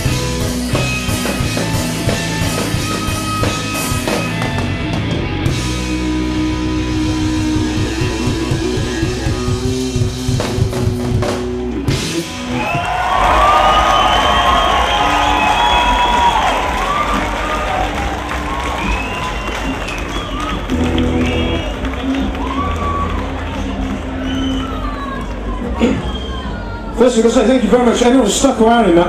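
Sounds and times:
crowd cheering and whistling: 0.0 - 10.2, 11.7 - 28.0
live rock band playing: 0.0 - 26.0.

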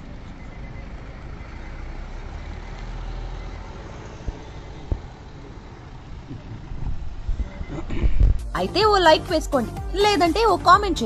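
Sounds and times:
car passing: 0.0 - 8.4
traffic rumble: 0.0 - 11.0.

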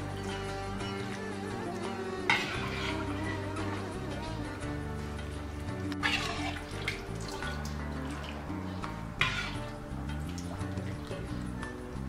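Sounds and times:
background music: 0.0 - 12.0
broth splashing onto a platter: 5.8 - 11.6.

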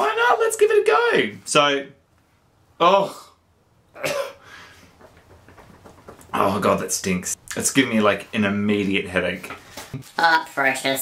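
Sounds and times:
man coughing: 4.0 - 4.5.

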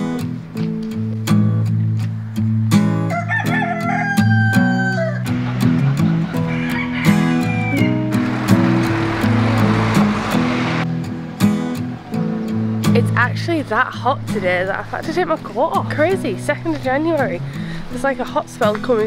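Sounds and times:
acoustic guitar music: 0.0 - 19.0
rooster crowing: 3.1 - 12.9
steady rushing noise: 7.1 - 12.7.

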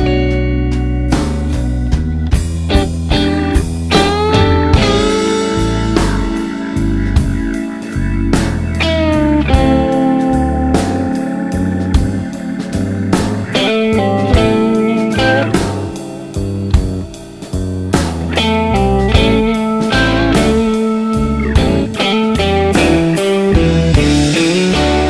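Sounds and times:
bass: 0.0 - 25.0
lead guitar with bent notes: 0.0 - 25.0
steady drum hits: 1.2 - 9.9, 10.8 - 20.8, 21.6 - 25.0.

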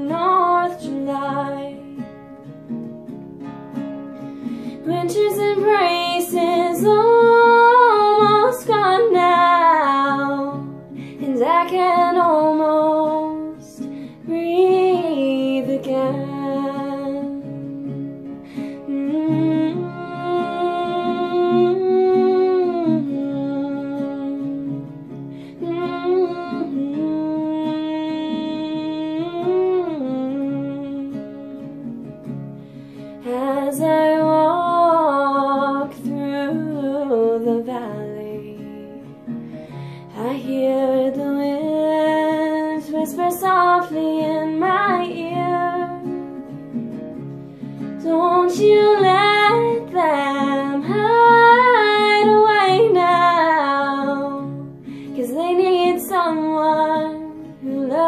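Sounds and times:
woman singing: 0.0 - 2.5, 4.0 - 58.0
acoustic guitar: 0.0 - 58.0.

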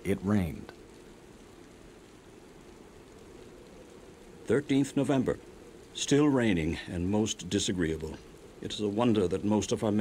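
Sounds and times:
faint steady rain: 0.0 - 10.0.

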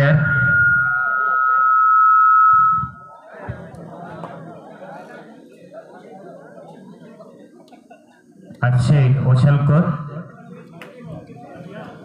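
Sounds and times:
steady high-pitched tone: 0.0 - 3.6.

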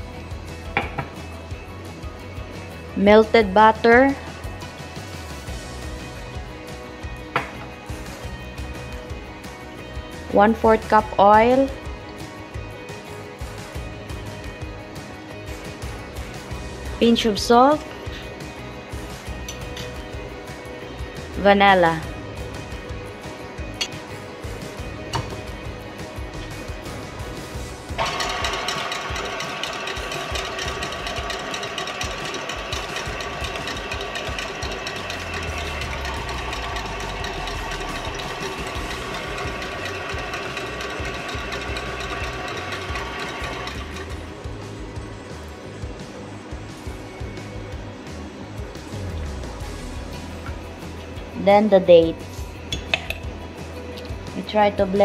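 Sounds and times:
background music: 0.0 - 55.0
stand mixer whisking: 28.0 - 44.3.

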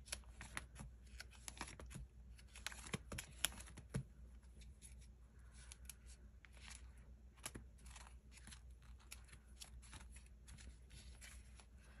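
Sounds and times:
plastic pages rustling and ticking: 0.0 - 4.1, 5.5 - 11.7.

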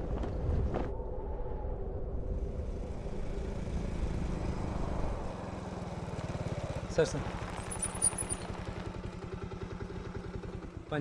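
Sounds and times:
motorcycle engine running: 2.8 - 11.0.

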